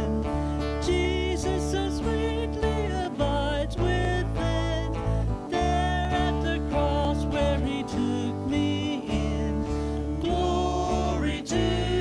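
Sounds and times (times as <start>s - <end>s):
electric bass: 0.0s - 12.0s
strummed acoustic guitar: 0.0s - 12.0s
voices singing a hymn: 5.5s - 12.0s.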